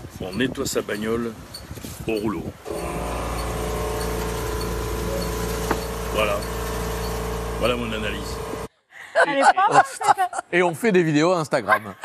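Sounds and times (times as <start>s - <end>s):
large machine humming: 2.7s - 8.7s.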